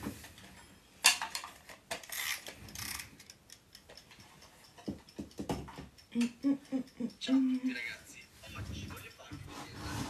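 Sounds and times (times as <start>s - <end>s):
mechanical dial timer ticking: 1.9s - 9.5s.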